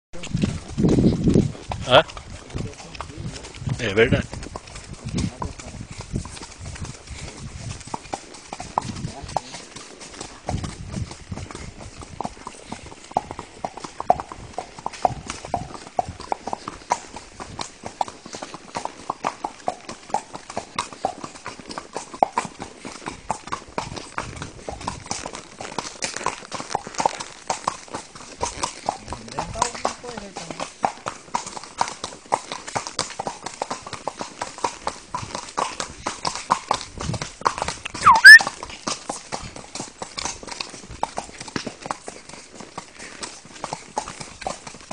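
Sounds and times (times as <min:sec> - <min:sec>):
donkey hooves clip-clopping on road: 0:00.2 - 0:44.9.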